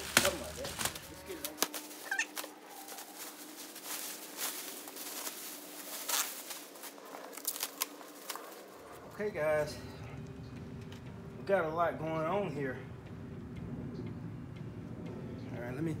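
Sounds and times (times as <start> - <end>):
plastic stretch wrap crinkling: 0.0 - 8.8.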